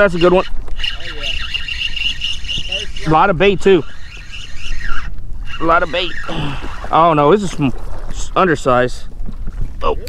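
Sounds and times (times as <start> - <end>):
fishing reel drag whining: 0.0 - 7.9.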